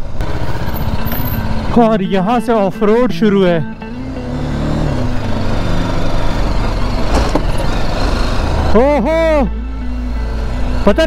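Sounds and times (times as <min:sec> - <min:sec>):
motorcycle engine running: 0:00.0 - 0:09.1
wind and ride noise: 0:00.0 - 0:11.0.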